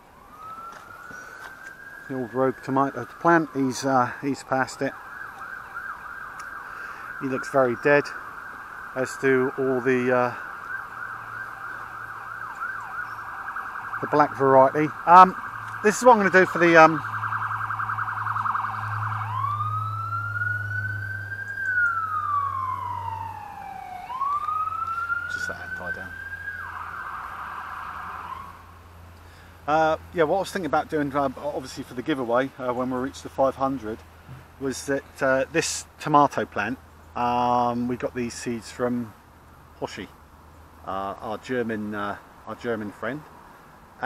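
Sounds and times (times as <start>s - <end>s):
distant siren: 0.0s - 35.6s.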